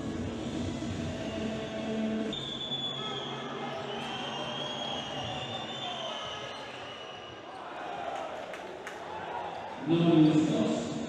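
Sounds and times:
crowd noise in arena: 0.0 - 11.0.

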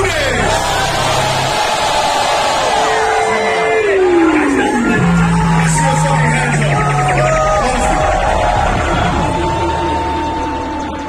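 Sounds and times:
hip-hop beat bass: 0.0 - 10.7.

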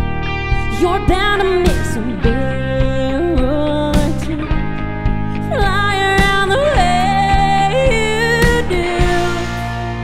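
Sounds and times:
guitars: 0.0 - 10.0
woman singing: 0.6 - 10.0
steady drum beat: 1.8 - 10.0.

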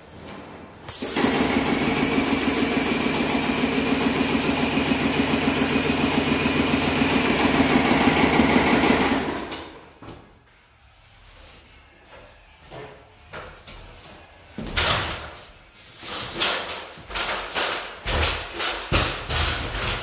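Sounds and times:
spray gun hissing: 0.9 - 7.0
electric pump humming: 0.9 - 9.0.

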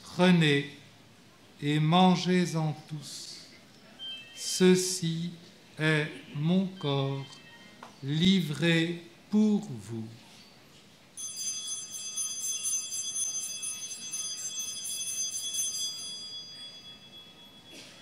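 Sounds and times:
small bells ringing: 11.2 - 18.0.

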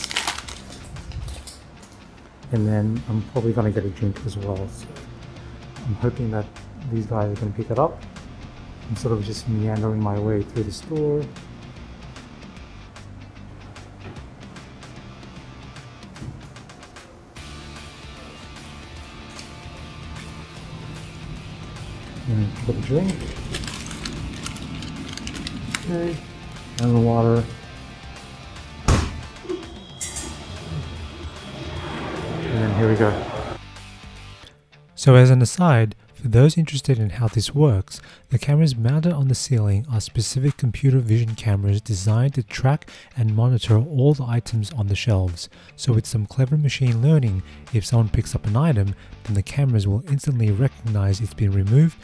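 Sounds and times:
potato chip bag crinkling: 0.0 - 1.6, 22.8 - 26.0
steady low hum: 13.4 - 33.6.

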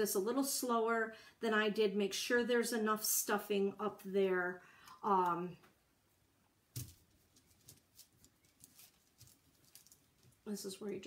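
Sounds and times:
fabric rustles: 6.8 - 10.5.

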